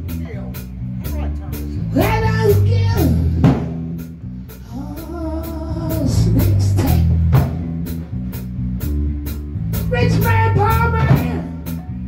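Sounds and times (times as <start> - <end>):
drum kit: 0.0 - 12.0
electric bass: 0.0 - 12.0
male singer singing: 1.9 - 3.4, 4.6 - 7.3, 9.9 - 11.8.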